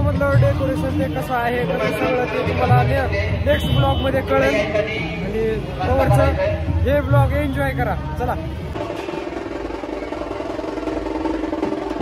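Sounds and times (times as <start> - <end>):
drum roll: 8.8 - 12.0.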